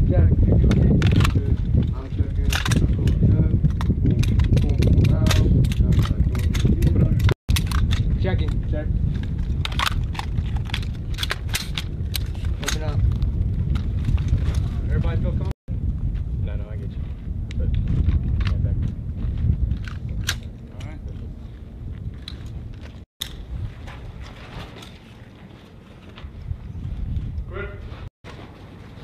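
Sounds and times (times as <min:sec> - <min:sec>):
wind rumble on microphone: 0:00.0 - 0:29.0.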